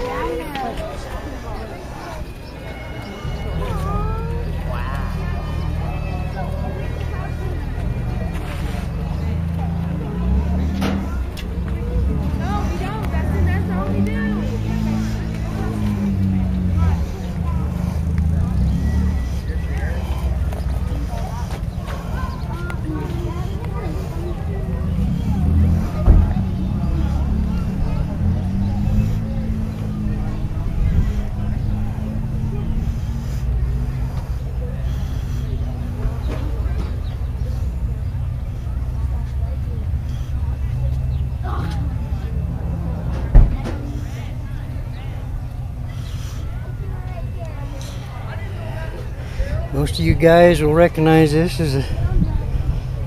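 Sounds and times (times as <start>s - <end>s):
faint voices: 0.0s - 53.0s
people talking: 0.0s - 53.0s
vehicle engine humming: 0.0s - 53.0s.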